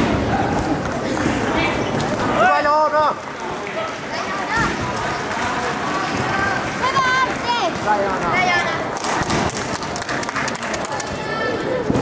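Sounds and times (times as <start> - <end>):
background hubbub: 0.0 - 12.0.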